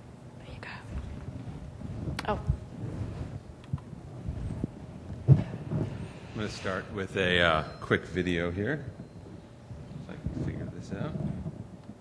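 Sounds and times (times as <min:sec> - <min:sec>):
breathy whisper into microphone: 0:00.4 - 0:01.2.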